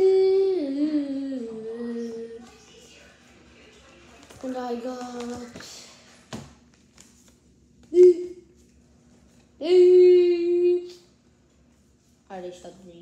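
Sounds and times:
child singing long notes: 0.0s - 2.4s, 7.9s - 8.4s, 9.6s - 11.0s.

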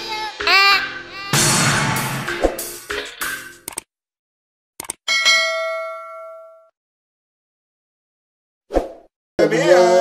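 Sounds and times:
quick click: 4.8s - 5.0s
bright bell ding: 5.1s - 6.7s.

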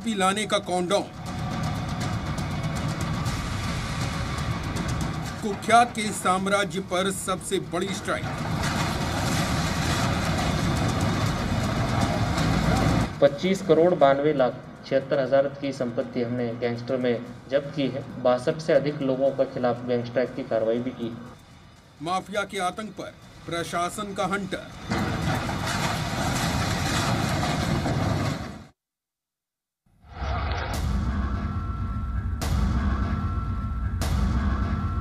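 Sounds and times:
rumble of crumbling masonry: 0.0s - 15.3s, 21.1s - 28.7s
excavator diesel engine running: 1.1s - 13.4s.

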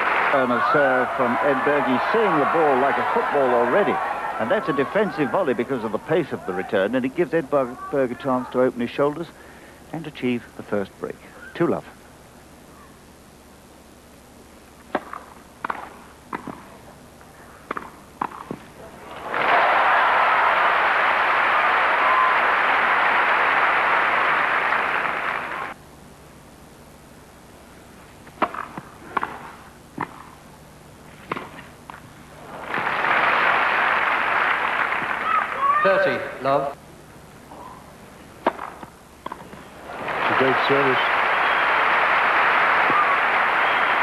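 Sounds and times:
crowd applause: 0.0s - 6.7s, 19.0s - 25.8s, 32.4s - 35.8s, 39.8s - 44.0s
tennis ball hit by rackets: 14.9s - 16.7s, 17.7s - 18.7s, 28.2s - 30.4s, 31.2s - 32.0s, 38.4s - 39.6s.

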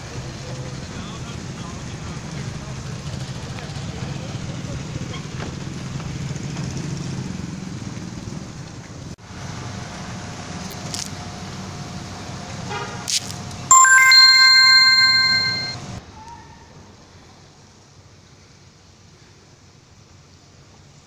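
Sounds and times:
rumble of passing vehicles: 0.0s - 13.6s.

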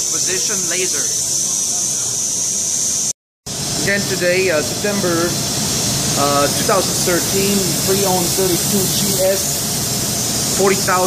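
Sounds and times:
milling machine high-pitched hiss: 0.0s - 11.0s.

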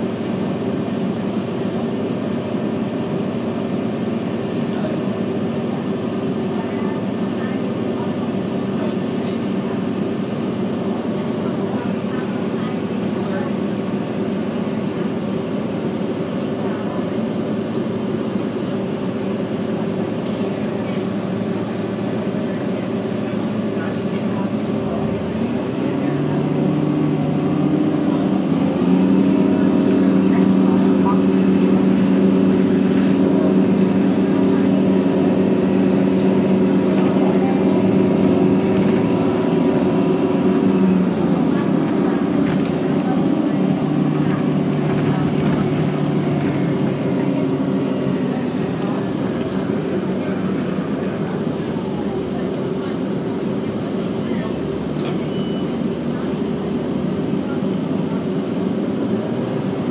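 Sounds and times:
bus drivetrain drone: 0.0s - 59.9s
road and cabin noise: 0.0s - 59.9s.

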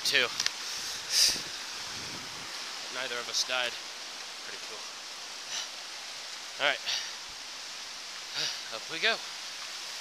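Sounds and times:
creek rushing: 0.0s - 10.0s.

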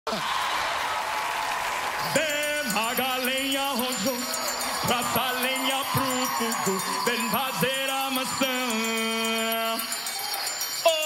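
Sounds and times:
studio audience applauding: 0.1s - 11.0s.

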